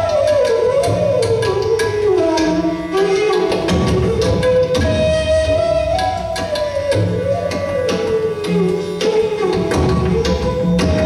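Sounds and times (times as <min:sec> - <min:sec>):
bamboo flute long note: 0:00.0 - 0:11.0
hand drum strokes: 0:00.0 - 0:11.0.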